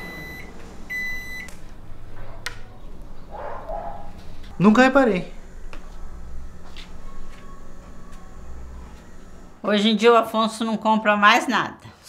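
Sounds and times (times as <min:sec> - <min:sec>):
microwave oven beeping: 0:00.0 - 0:09.6.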